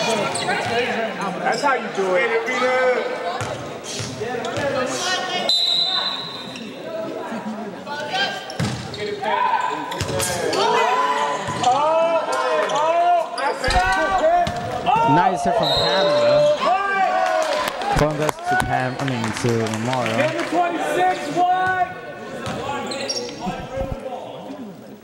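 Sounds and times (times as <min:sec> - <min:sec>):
referee's whistle: 0:05.4 - 0:06.6, 0:15.5 - 0:16.6
people shouting and cheering: 0:09.2 - 0:22.1.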